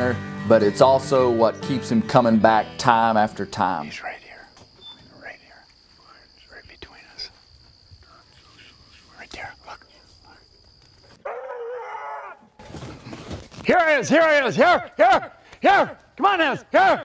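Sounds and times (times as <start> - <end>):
hounds baying: 11.2 - 12.5, 14.6 - 16.0.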